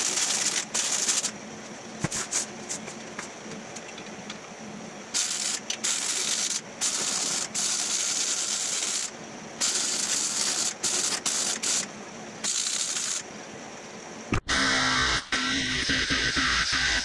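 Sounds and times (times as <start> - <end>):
electric arc welding crackling hiss: 0.0 - 1.4, 2.0 - 3.0, 5.1 - 13.3.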